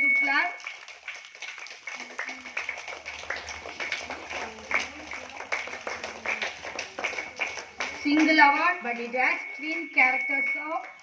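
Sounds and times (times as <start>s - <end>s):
people clapping: 0.0s - 11.0s.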